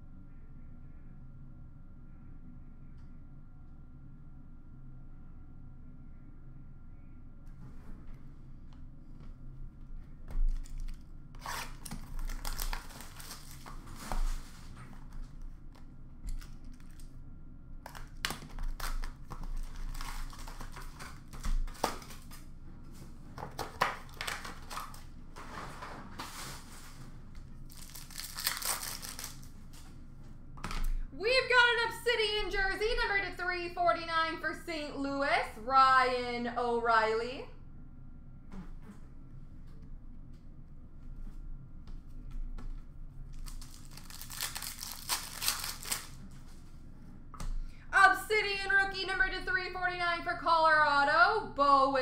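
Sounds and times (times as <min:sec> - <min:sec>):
card pack wrappers tearing: 0:10.5 - 0:14.3, 0:16.3 - 0:17.1, 0:17.9 - 0:22.4, 0:23.5 - 0:25.1, 0:27.7 - 0:29.8, 0:43.4 - 0:46.2
wrappers crinkling: 0:10.5 - 0:15.4, 0:16.3 - 0:17.2, 0:17.9 - 0:22.5, 0:23.5 - 0:25.6, 0:27.6 - 0:29.9, 0:43.3 - 0:46.6.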